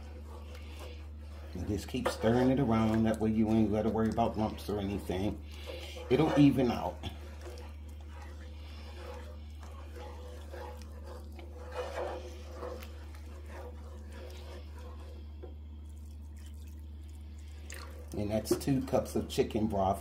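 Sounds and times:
wooden spoon stirring in a skillet: 0:00.0 - 0:20.0.

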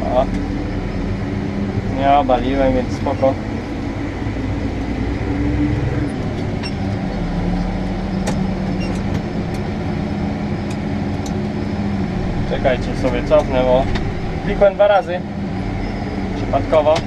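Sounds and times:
tractor diesel engine under load: 0:00.0 - 0:17.0.

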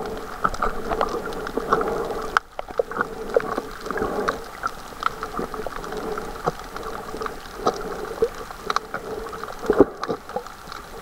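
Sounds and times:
muffled underwater noise: 0:00.0 - 0:11.0.

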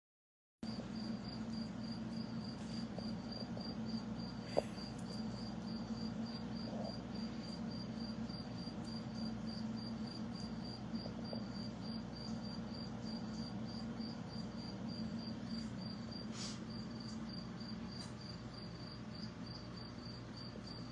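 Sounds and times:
aquarium pump humming: 0:00.7 - 0:20.9.

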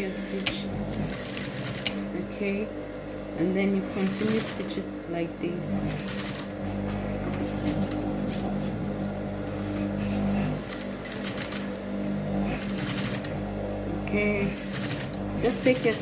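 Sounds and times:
sewing machine motor hum: 0:00.0 - 0:16.0.

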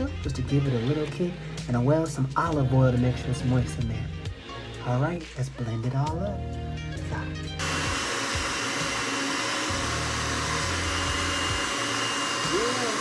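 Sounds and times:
food processor chopping: 0:07.6 - 0:13.0.

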